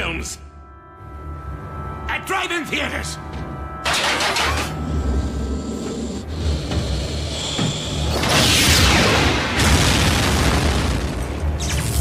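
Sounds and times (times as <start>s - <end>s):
mechanical clanking and whirring: 3.3s - 9.0s.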